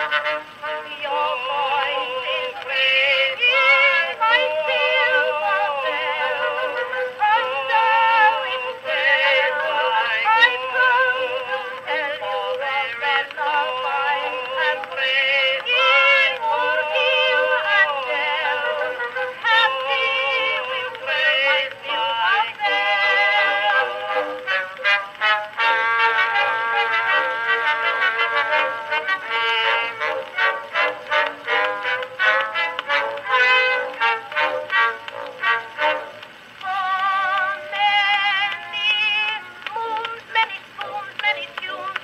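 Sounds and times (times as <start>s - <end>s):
old phonograph song recording: 0.0s - 42.0s.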